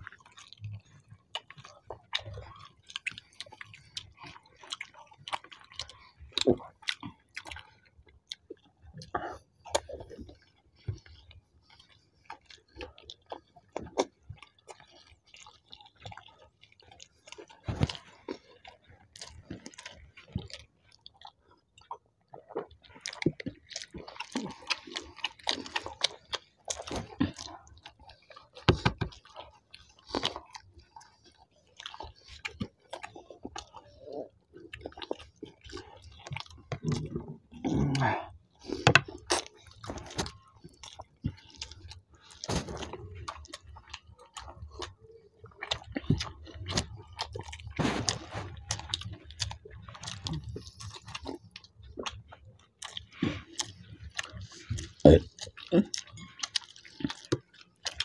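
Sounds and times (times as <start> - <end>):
people chewing food: 0.0 - 58.0.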